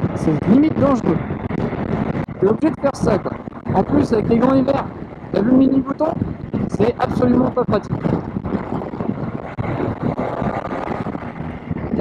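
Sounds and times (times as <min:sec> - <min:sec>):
wind rushing over microphone: 0:00.0 - 0:12.0
motorcycle engine running: 0:03.2 - 0:12.0.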